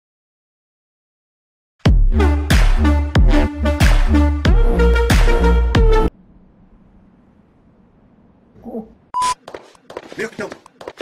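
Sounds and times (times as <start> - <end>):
choppy dubbed speech fragments: 10.1 - 10.7.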